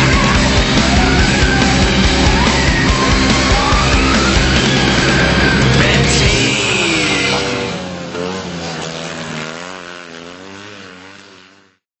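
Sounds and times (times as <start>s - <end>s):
car engine running: 0.0s - 11.8s.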